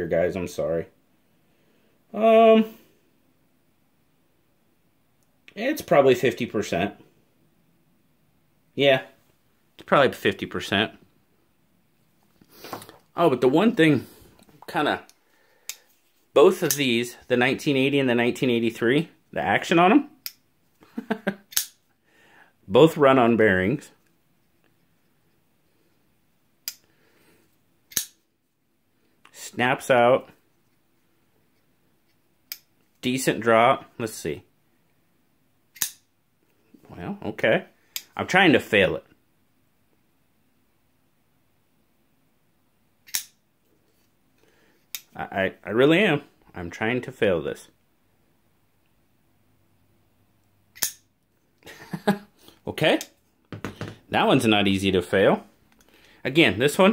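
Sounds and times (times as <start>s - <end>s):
knife blade metal clicks: 21.5s - 21.8s, 27.9s - 28.2s, 35.8s - 36.0s, 43.1s - 43.4s, 50.8s - 51.0s.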